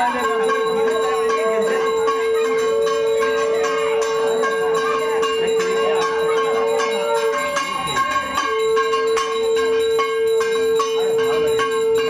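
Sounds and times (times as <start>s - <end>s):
hand bell ringing rapidly: 0.0s - 12.0s
long steady tone: 0.0s - 12.0s.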